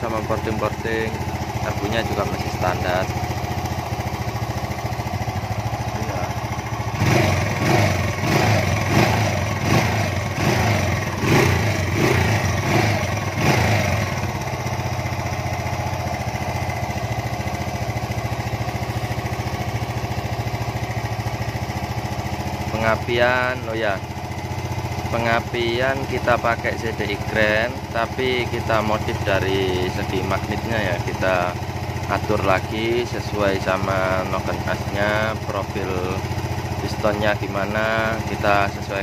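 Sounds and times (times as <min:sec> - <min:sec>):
engine throttle blips: 0:00.0 - 0:14.9
engine idling: 0:00.0 - 0:39.0.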